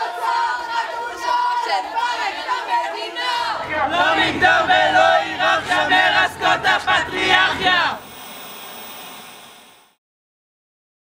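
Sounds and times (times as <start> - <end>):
steady background hiss: 3.5 - 10.0.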